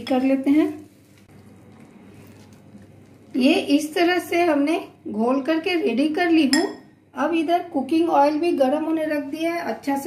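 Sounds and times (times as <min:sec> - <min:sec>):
hand kneading moist dough: 0:00.2 - 0:03.9.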